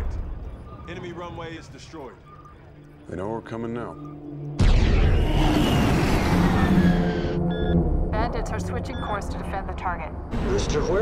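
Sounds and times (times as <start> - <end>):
fighter jets roaring past: 5.0 - 7.4.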